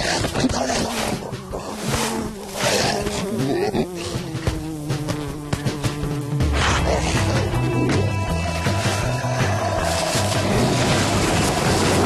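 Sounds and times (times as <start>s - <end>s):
background music: 0.0s - 12.0s
cartoon insect wings buzzing: 0.9s - 7.7s.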